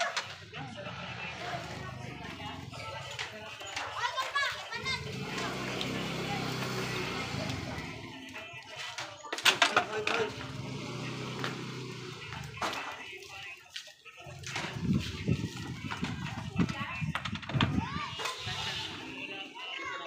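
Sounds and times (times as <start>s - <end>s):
children and adults chattering: 0.0s - 20.0s.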